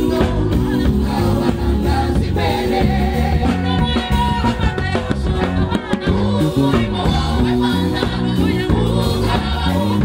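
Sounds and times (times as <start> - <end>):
amplified instrumental backing: 0.0 - 10.0
gospel choir singing: 0.0 - 10.0.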